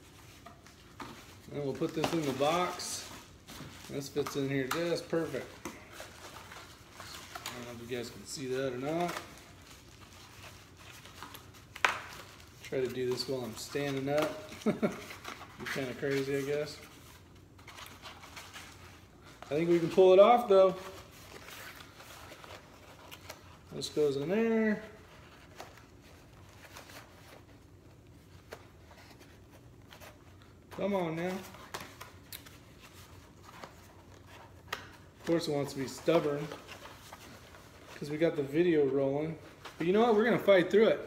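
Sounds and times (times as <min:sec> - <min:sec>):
low room hum: 0:00.0 - 0:41.0.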